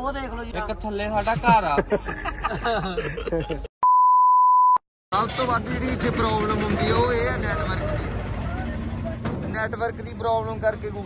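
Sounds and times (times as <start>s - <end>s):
men talking: 0.6s - 3.5s, 5.2s - 11.0s
censor bleep: 3.8s - 4.8s.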